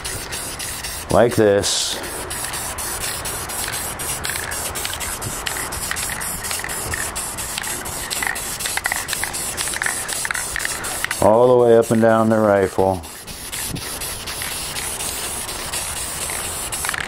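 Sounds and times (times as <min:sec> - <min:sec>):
spray can hissing: 0:00.0 - 0:12.0, 0:12.8 - 0:17.0.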